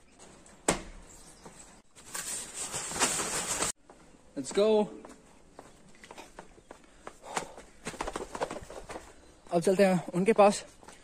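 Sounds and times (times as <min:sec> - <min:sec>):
footsteps walking: 0:03.6 - 0:09.2.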